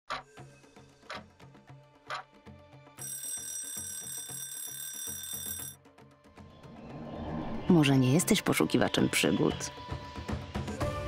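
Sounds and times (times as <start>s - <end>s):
background music with low pulse: 0.1s - 3.0s, 5.8s - 11.0s
bell ringing: 3.0s - 5.8s.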